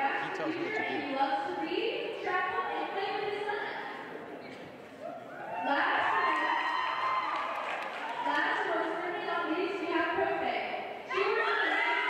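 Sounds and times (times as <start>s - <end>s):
indistinct talking in a hall: 0.0s - 12.0s.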